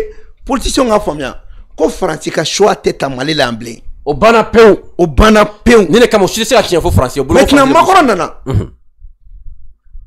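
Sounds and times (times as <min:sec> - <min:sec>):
man speaking: 0:00.0 - 0:08.6
throat clearing: 0:08.4 - 0:09.0.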